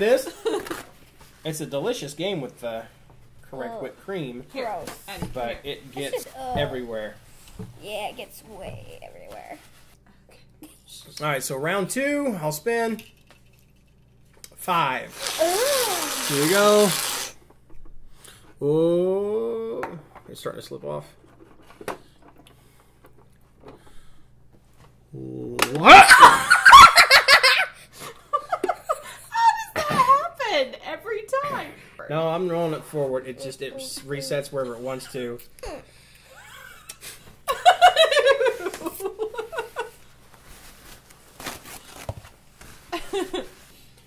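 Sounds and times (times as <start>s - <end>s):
paper towel rustling and rubbing: 15.1s - 17.4s, 39.4s - 44.0s.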